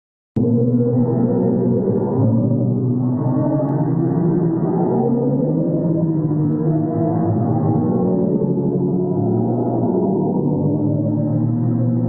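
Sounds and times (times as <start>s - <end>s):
deep drone of layered low tones: 0.4s - 12.0s.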